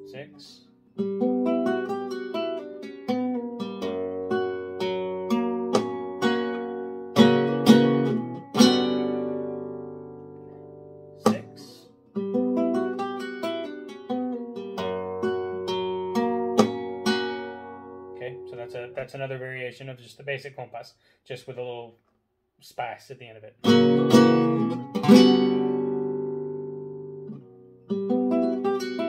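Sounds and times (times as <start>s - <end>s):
flamenco guitar playing: 0.8s - 19.1s, 23.6s - 29.0s.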